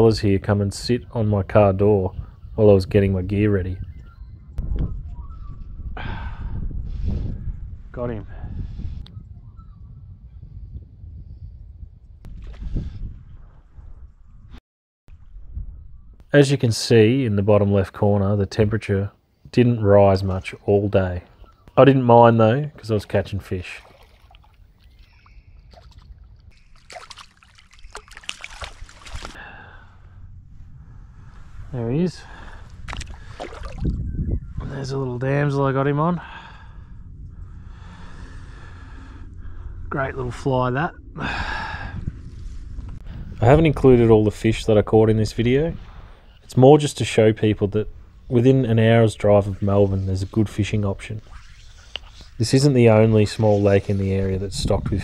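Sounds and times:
wind rumbling on microphone: 0:00.0 - 0:16.3, 0:22.5 - 0:55.0
fish splashing at surface: 0:26.6 - 0:29.4, 0:32.9 - 0:33.9.

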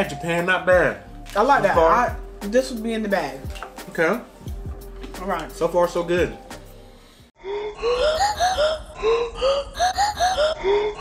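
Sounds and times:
high-pitched laughter: 0:07.4 - 0:11.0.

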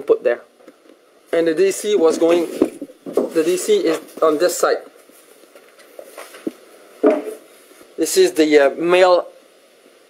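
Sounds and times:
low background hiss: 0:00.0 - 0:10.0.

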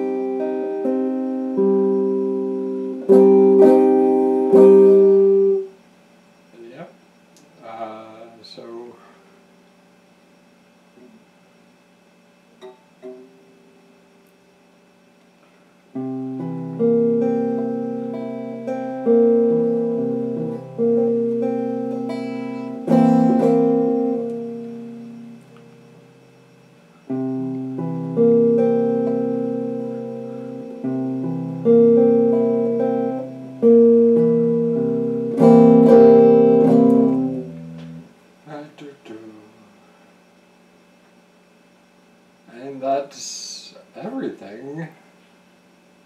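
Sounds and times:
clean electric guitar chords: 0:00.0 - 0:05.7, 0:16.0 - 0:38.1.

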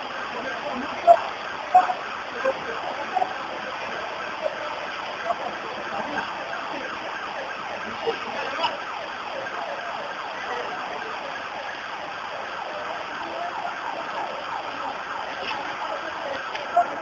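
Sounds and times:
emergency vehicle siren: 0:00.0 - 0:17.0.

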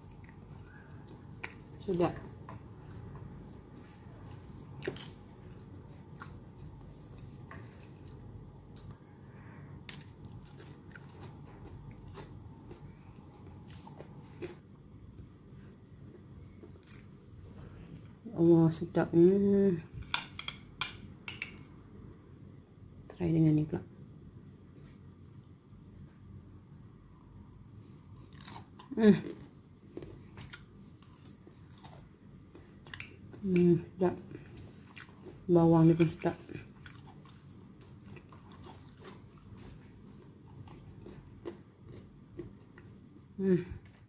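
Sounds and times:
person chewing food: 0:00.0 - 0:01.8, 0:02.7 - 0:09.1, 0:09.8 - 0:15.2, 0:16.0 - 0:18.2, 0:27.8 - 0:33.4, 0:34.2 - 0:35.5, 0:36.4 - 0:44.0.

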